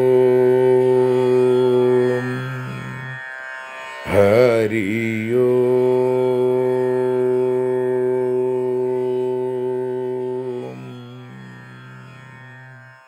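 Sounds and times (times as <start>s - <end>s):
man chanting: 0.0s - 3.2s, 4.0s - 12.9s
steady drone: 4.1s - 12.9s.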